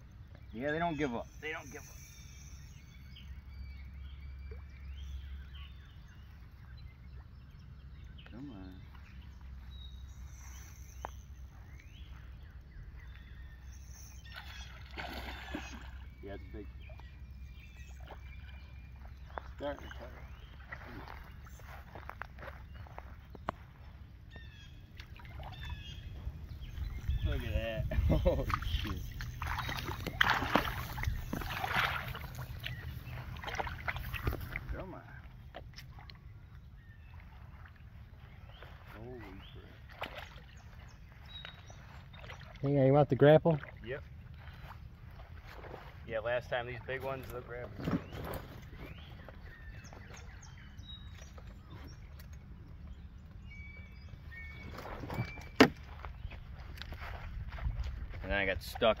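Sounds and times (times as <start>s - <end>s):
thin bird chirps: 0.0s - 42.7s, 43.7s - 45.9s, 46.5s - 57.2s
fish splashing in water: 14.2s - 16.2s, 28.4s - 34.7s, 39.7s - 42.6s.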